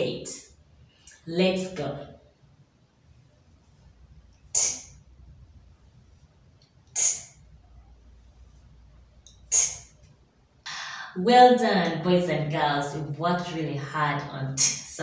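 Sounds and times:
woman saying a phonics sound: 10.7 - 15.0.

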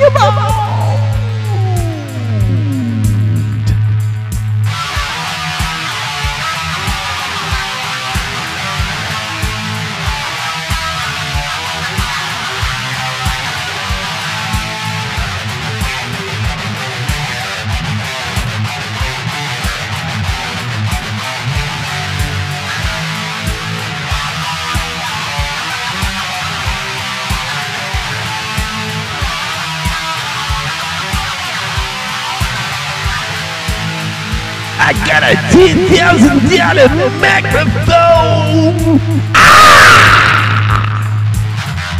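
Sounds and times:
steady beat: 0.0 - 39.6, 40.6 - 41.9
guitar playing: 0.0 - 41.9.

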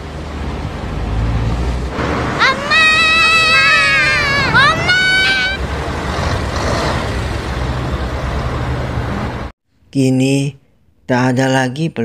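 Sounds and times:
city street traffic rumble: 0.0 - 9.5
child crying out: 2.4 - 5.6.

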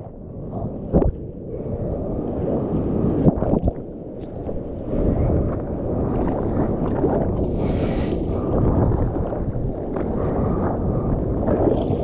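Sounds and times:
fizzing hiss: 7.5 - 8.4.

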